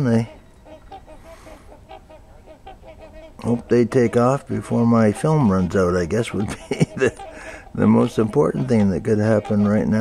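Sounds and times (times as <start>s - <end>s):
swans honking: 0.0s - 10.0s.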